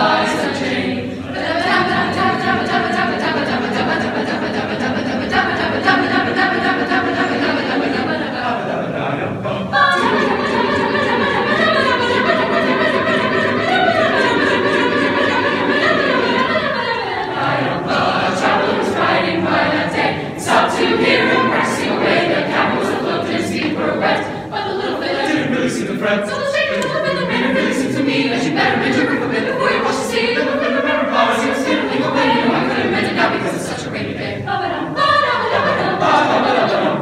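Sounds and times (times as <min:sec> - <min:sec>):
chamber choir singing: 0:00.0 - 0:37.0.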